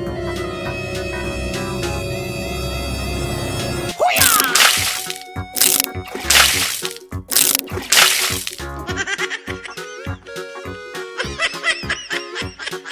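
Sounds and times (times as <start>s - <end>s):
background music: 0.0s - 12.9s
water splashes: 4.2s - 8.6s.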